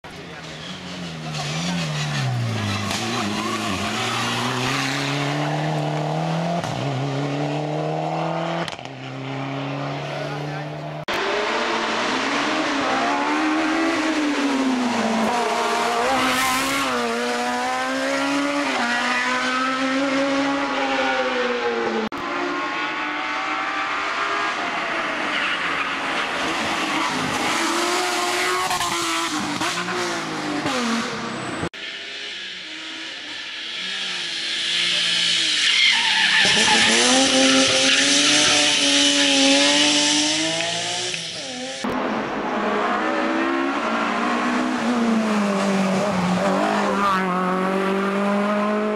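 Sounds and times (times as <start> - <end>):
race car engines revving: 0.0 - 48.9.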